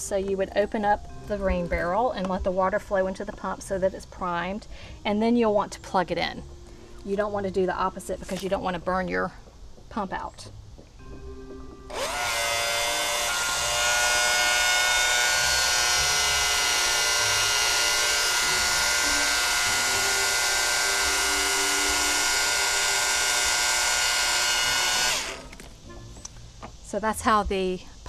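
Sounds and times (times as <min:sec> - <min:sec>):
electric pump motor whining: 0:11.9 - 0:26.4.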